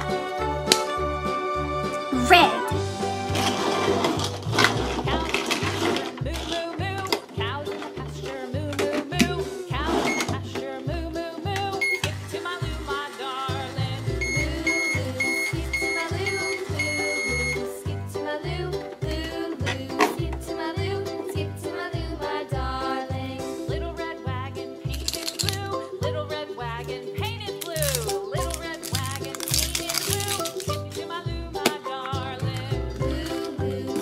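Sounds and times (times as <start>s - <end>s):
upbeat background music: 0.0s - 34.0s
toy microwave electronic beeping: 10.0s - 10.4s, 11.8s - 12.2s, 14.1s - 17.7s.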